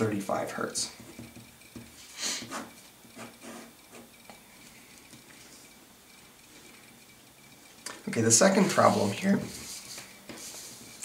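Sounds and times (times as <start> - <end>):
faint room hiss: 0.0 - 11.0
marker scratching on paper: 1.0 - 4.1.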